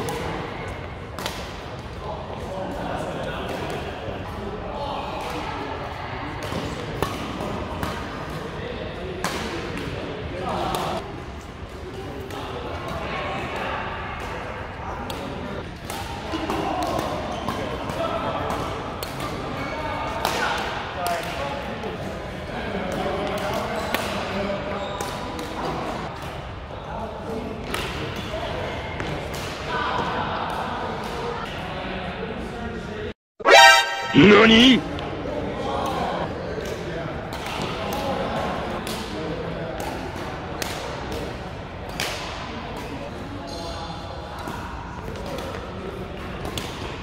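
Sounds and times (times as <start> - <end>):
indistinct voices in a hall: 0.0 - 47.0.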